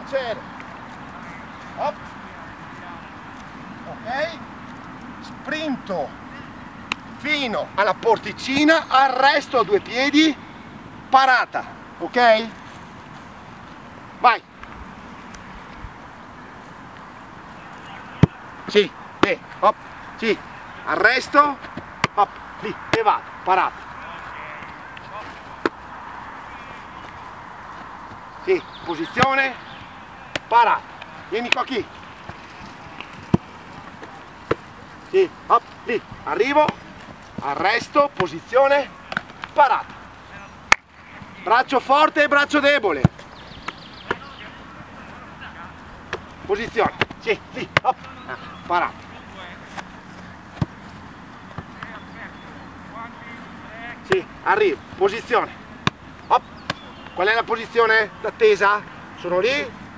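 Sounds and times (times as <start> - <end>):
outdoor background noise: 0.0 - 59.9
faint distant voices: 17.4 - 59.8.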